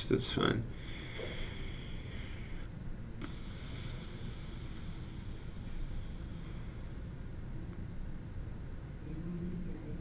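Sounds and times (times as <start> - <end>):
faint microphone hiss: 0.0 - 10.0.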